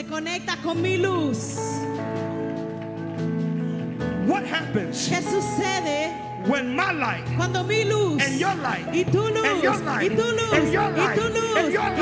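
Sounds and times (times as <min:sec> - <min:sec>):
person preaching: 0:04.2 - 0:12.0.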